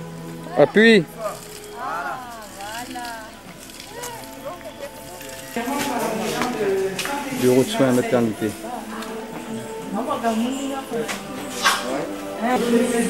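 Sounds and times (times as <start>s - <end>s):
pump squeaking: 0.0s - 7.8s
foot-operated water pump: 0.0s - 9.0s.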